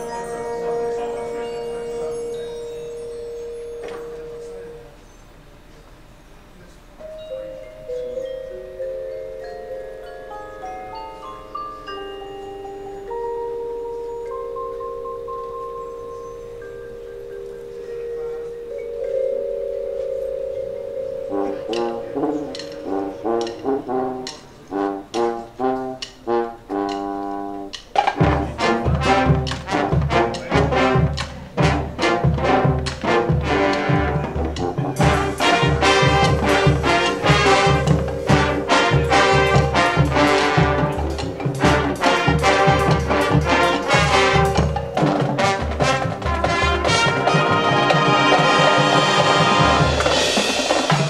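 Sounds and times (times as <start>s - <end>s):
marching band sustained chord: 0.0s - 5.0s, 13.0s - 51.0s
chimes and mallet percussion ringing: 0.0s - 5.4s, 7.0s - 24.6s, 34.4s - 51.0s
sharp percussion hit: 20.3s - 25.4s, 28.0s - 51.0s.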